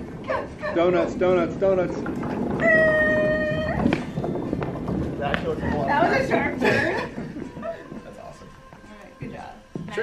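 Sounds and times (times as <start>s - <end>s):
cart rolling with low rumble: 0.0s - 8.7s.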